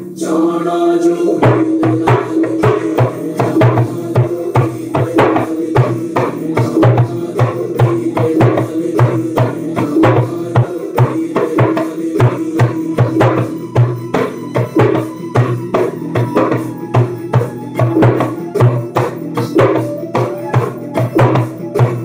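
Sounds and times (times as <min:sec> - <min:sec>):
djembe played by hand: 0:01.4 - 0:22.0.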